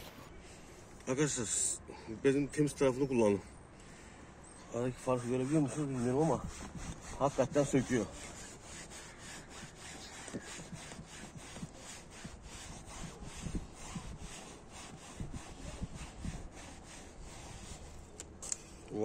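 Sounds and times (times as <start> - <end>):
cloth rubbing on car trim: 4.8 - 18.2.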